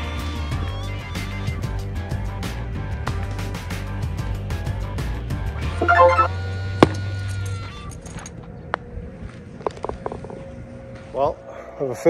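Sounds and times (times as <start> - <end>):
background music with bass line: 5.8 - 6.3.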